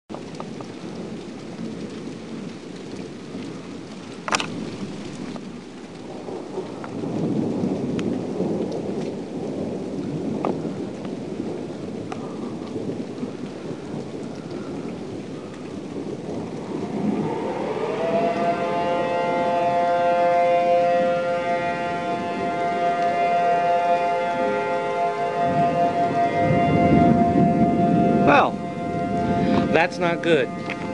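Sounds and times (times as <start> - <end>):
rolling thunder: 0.1 - 30.9
steady rain: 0.1 - 30.9
tornado warning siren: 0.1 - 30.9
sharp thunder crack: 4.3 - 30.9.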